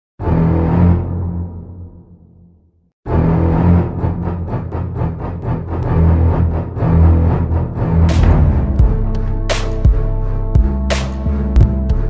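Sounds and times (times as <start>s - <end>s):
intro music with driving beat: 8.0s - 12.0s.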